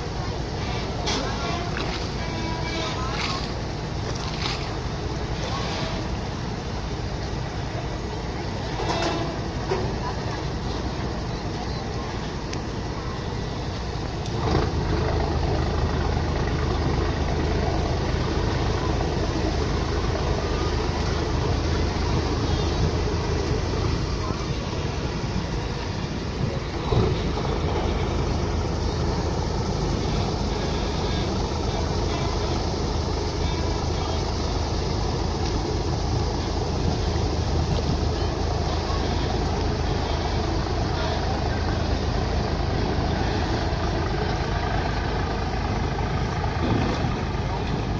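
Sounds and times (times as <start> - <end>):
boat engine droning: 0.0 - 47.9.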